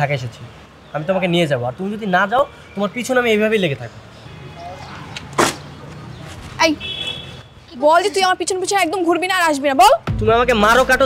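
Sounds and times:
road traffic hum: 0:00.0 - 0:11.0
sharp smack: 0:05.3 - 0:05.7.

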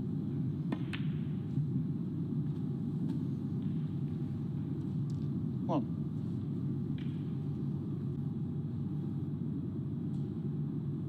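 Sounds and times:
room noise hum: 0:00.0 - 0:11.0.

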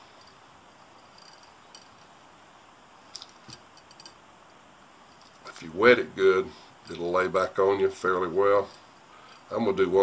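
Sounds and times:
light ticks and rustles: 0:06.5 - 0:07.2.

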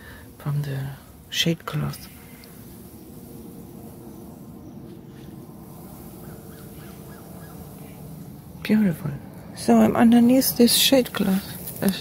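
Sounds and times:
low steady rumble: 0:00.0 - 0:12.0
faint bird calls: 0:04.0 - 0:08.4.

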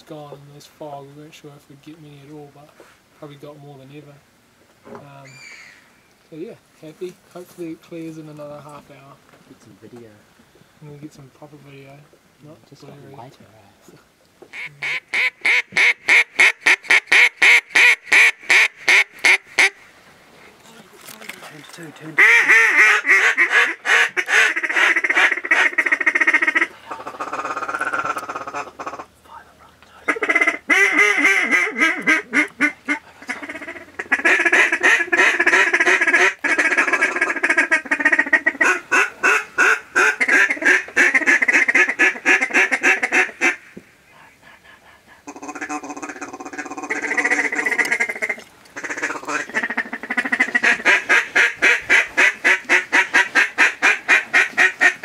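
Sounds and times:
ducks quacking rapidly: 0:14.5 - 0:19.8, 0:22.0 - 0:29.1, 0:30.1 - 0:55.0.

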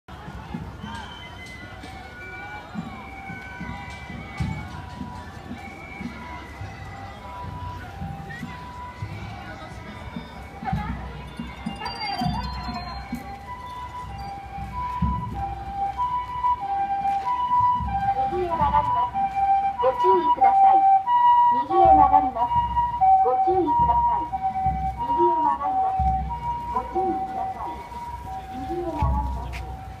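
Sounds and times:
two-tone ambulance siren: 0:00.8 - 0:30.0.

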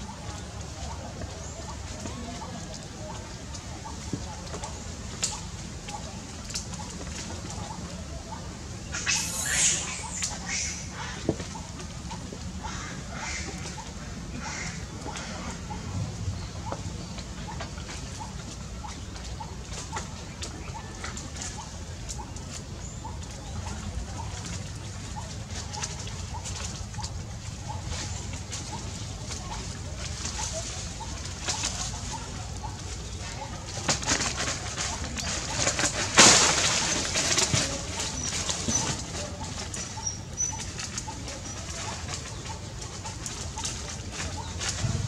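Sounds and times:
low outdoor rumble: 0:00.0 - 0:45.0
bird calling low note: 0:07.6 - 0:11.2
thin high bird chirps: 0:08.9 - 0:10.9.

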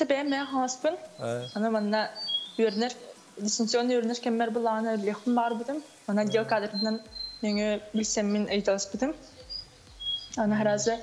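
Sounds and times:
woman speaking over video call: 0:00.0 - 0:09.3, 0:10.4 - 0:11.0.

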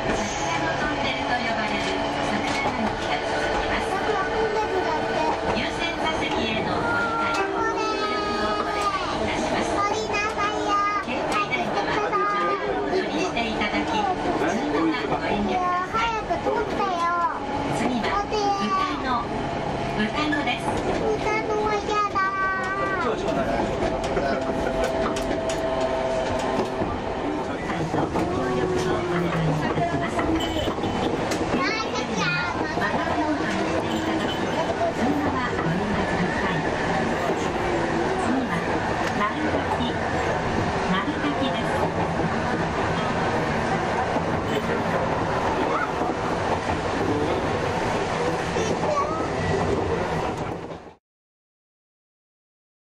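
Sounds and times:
tram rumbling on rails: 0:00.0 - 0:51.0.

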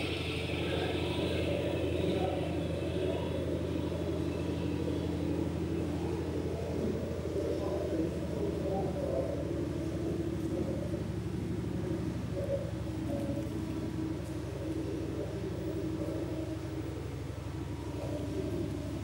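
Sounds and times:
low hum and rumble: 0:00.0 - 0:19.0
wavering murmur: 0:00.0 - 0:19.0.

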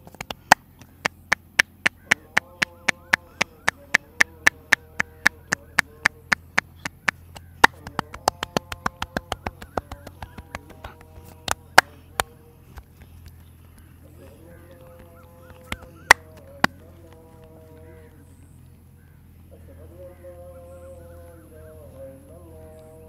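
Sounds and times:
palms clapping: 0:00.0 - 0:18.0
hands slapping a head: 0:06.6 - 0:11.9.

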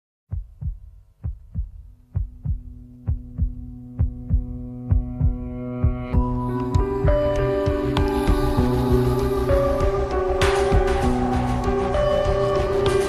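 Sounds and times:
heartbeat thumps: 0:00.3 - 0:09.0.

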